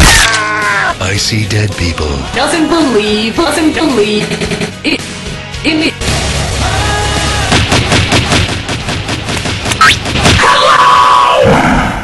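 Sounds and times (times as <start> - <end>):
rapid sharp cracks: 7.5 - 10.6.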